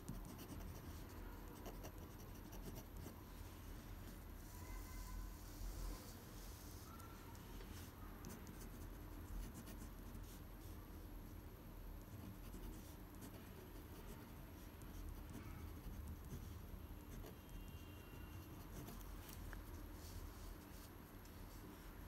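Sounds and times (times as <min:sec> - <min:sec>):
pen scratching on paper: 0:00.0 - 0:03.2, 0:08.2 - 0:10.4, 0:12.1 - 0:19.8.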